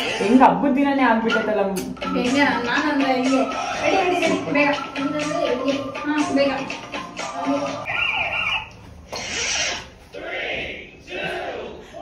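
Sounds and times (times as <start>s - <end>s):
high-pitched shriek: 7.9s - 10.0s.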